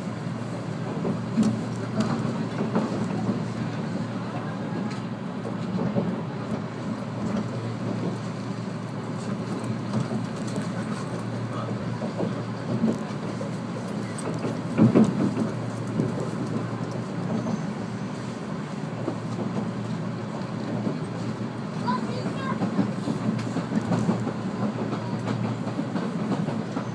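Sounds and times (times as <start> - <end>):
train wheels rumbling on rails: 0.0 - 26.9.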